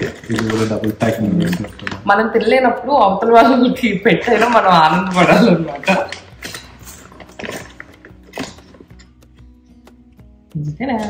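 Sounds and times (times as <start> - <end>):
plastic bag crinkling: 0.0 - 2.5, 3.8 - 9.0.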